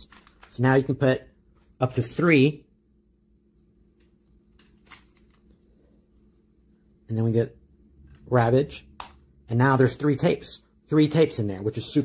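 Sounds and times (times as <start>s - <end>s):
plastic toy handling: 0.0s - 0.7s, 4.0s - 5.7s.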